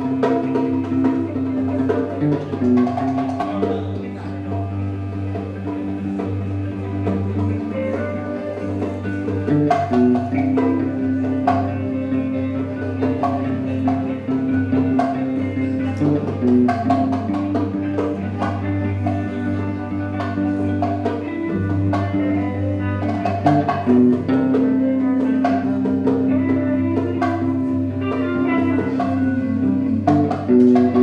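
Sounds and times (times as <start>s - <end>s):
electric bass: 0.0s - 31.0s
guitar: 0.0s - 31.0s
hand percussion tapping: 0.0s - 31.0s.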